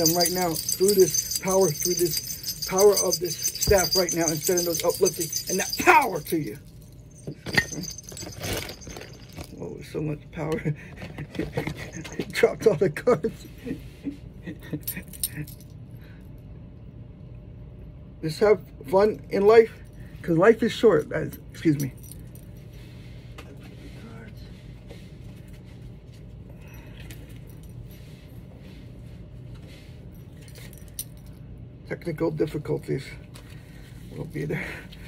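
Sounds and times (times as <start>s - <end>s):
handling noise: 0.0s - 9.6s
metallic jingling: 0.0s - 9.6s
low steady hum: 0.0s - 35.0s.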